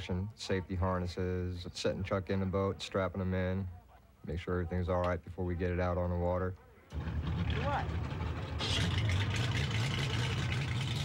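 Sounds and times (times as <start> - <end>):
boat engine idling: 6.9 - 11.0.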